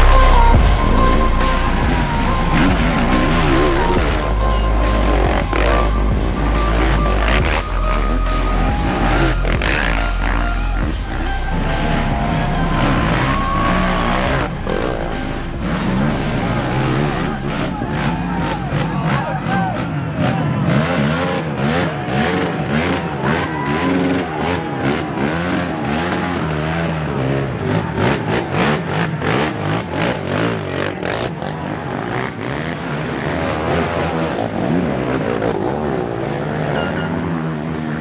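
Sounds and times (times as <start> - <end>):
crowd shouting: 0.0 - 33.7
atv engine revving: 0.0 - 38.0.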